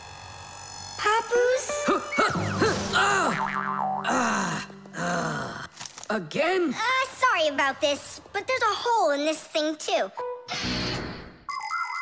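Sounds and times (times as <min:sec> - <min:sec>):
cartoon background music: 0:01.0 - 0:04.4, 0:06.8 - 0:12.0
boing comic sound effects: 0:02.0 - 0:04.2.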